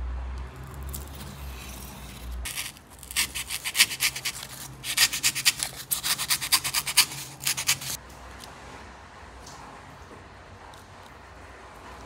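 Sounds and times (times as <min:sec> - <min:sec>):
knife blade cutting cardboard: 0:00.6 - 0:08.0.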